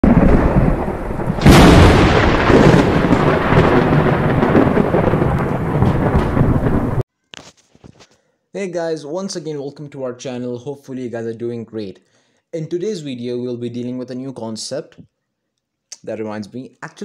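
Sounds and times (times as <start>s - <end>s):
loud rumbling noise: 0.0s - 7.0s
sharp crack: 0.0s - 7.0s.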